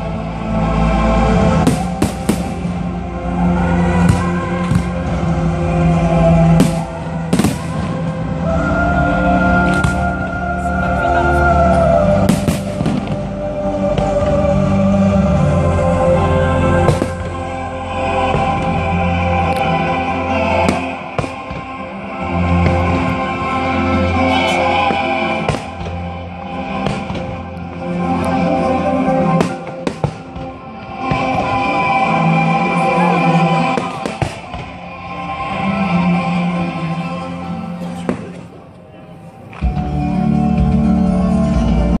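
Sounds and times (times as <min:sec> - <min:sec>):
music: 0:00.0 - 0:42.0
firework bangs: 0:01.5 - 0:02.8, 0:06.5 - 0:08.1, 0:12.2 - 0:13.3, 0:24.8 - 0:26.1, 0:29.2 - 0:31.6, 0:33.6 - 0:34.8.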